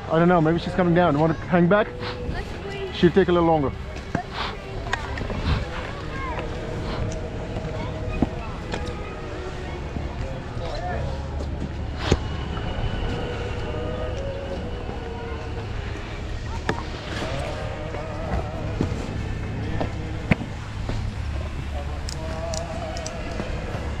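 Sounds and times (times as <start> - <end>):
faint distant voices: 0.0 - 24.0.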